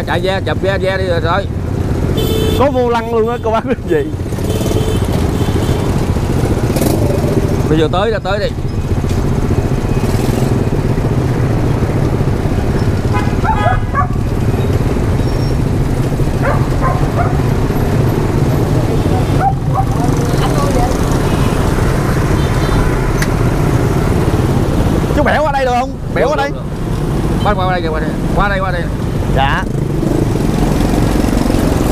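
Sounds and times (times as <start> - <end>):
passing motorbikes: 0.0 - 31.9
small motorbike engine running: 4.3 - 24.7.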